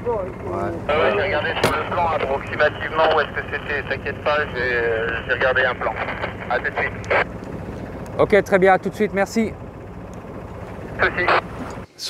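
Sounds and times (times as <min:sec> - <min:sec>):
sailboat noise: 0:00.0 - 0:12.0
wind: 0:00.0 - 0:12.0.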